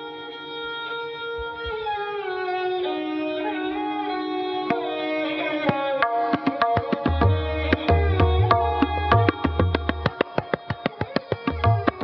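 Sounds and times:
bowed string instrument melody: 0.0s - 12.0s.

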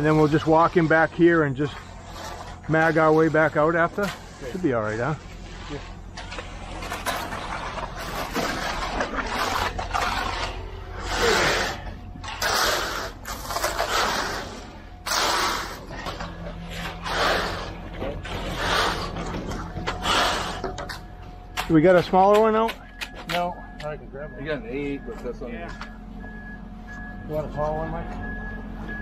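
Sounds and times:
screed board scraping wet concrete: 0.0s - 21.0s
steady low hum: 0.0s - 29.0s.

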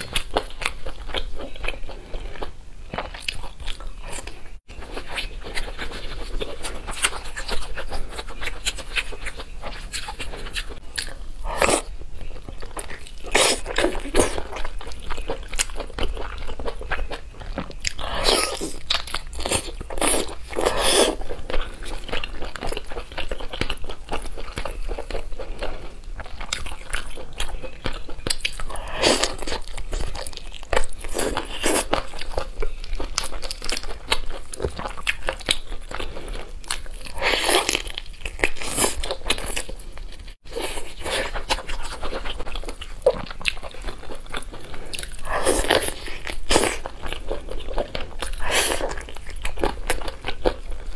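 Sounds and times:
biting and chewing: 0.0s - 50.9s.

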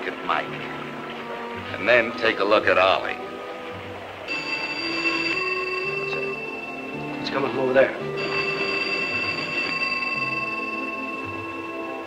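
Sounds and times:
telephone ringing: 4.3s - 12.0s.

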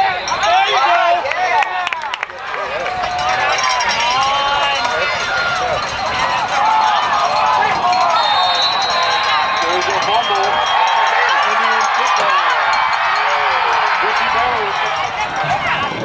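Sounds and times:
crowd yelling and shouting: 0.0s - 16.0s.

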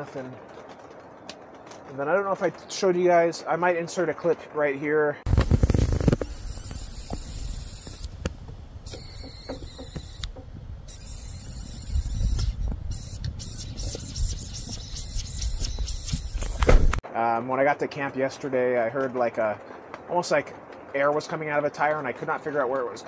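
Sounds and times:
air hissing out past a bolt: 5.3s - 17.0s.

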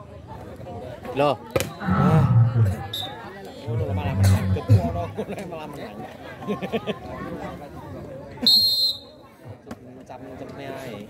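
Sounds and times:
referee whistle blast: 8.4s - 9.1s.

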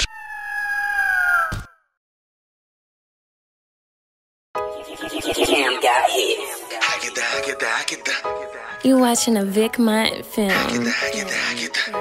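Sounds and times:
eagle screech: 0.0s - 1.8s.

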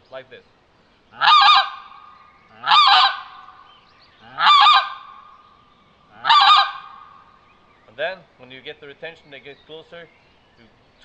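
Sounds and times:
plastic goose call honks: 4.2s - 5.1s, 6.2s - 7.0s.

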